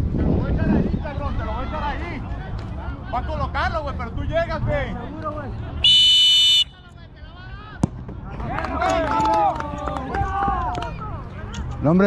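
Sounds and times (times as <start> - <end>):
referee's whistle blast: 5.8 - 6.8.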